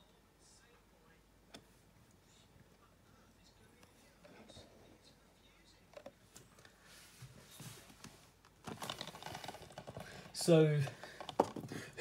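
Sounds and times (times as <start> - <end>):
plastic case clicks and rustles: 8.6 - 11.8.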